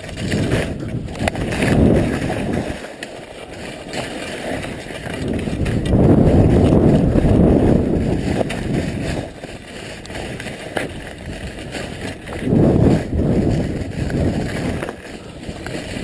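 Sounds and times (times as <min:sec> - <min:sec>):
wind buffeting microphone: 0:00.0 - 0:02.9, 0:03.5 - 0:16.0.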